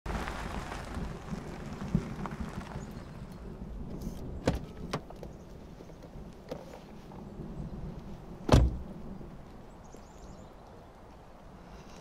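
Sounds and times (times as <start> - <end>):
car door latch clicks: 8.5 - 8.8.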